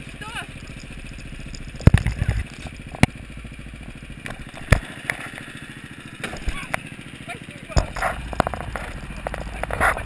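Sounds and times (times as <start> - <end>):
go-kart engine running: 0.0 - 10.0.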